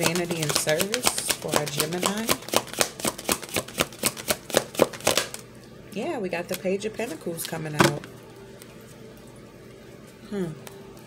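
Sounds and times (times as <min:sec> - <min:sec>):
cards being shuffled: 0:00.0 - 0:05.4.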